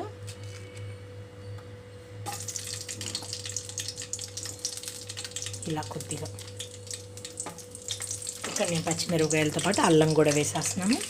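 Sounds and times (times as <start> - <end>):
chillies sizzling in hot oil: 2.3 - 11.0.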